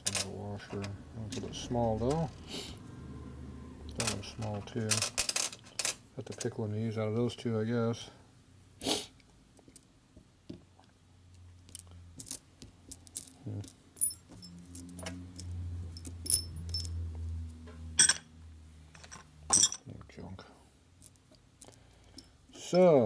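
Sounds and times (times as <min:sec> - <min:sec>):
metal bolts clinking: 0:00.0 - 0:02.4, 0:04.0 - 0:06.6, 0:13.1 - 0:17.0, 0:18.0 - 0:18.3, 0:19.0 - 0:19.9.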